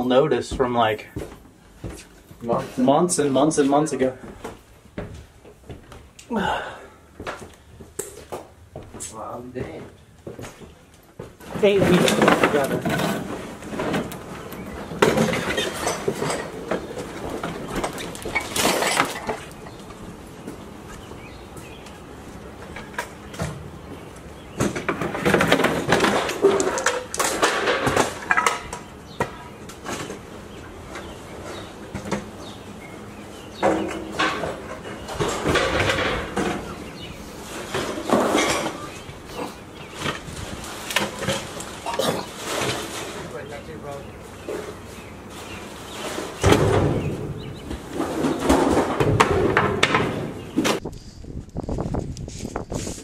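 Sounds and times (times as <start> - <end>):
footsteps on wooden stairs: 0.5 - 2.7, 4.2 - 6.2, 7.1 - 12.5
wooden furniture knocking and scraping: 9.6 - 20.6, 45.9 - 50.8.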